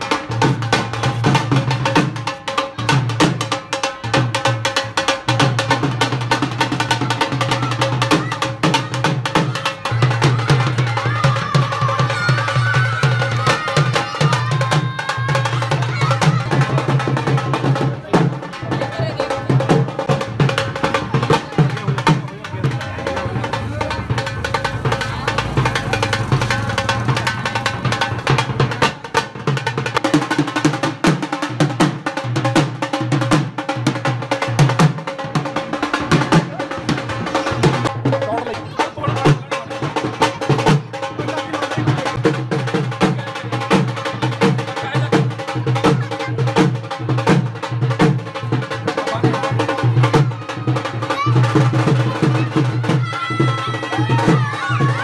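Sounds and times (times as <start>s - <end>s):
fast dhol drumming: 0.0s - 55.0s
music: 0.0s - 55.0s
voices: 0.1s - 29.2s, 35.5s - 55.0s.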